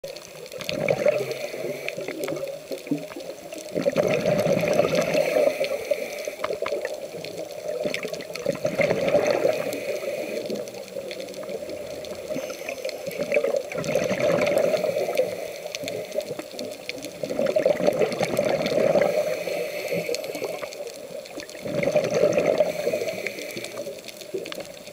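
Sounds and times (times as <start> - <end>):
diver exhaling bubbles underwater: 0.6 - 5.8, 6.4 - 10.6, 11.4 - 15.4, 17.2 - 19.4, 21.4 - 23.3.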